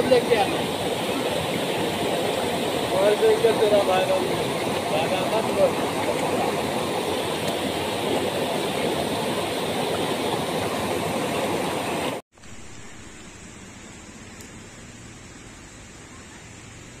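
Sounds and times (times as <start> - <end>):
faint steady hiss: 0.0 - 6.3, 12.4 - 17.0
water rushing over rocks: 0.0 - 12.9.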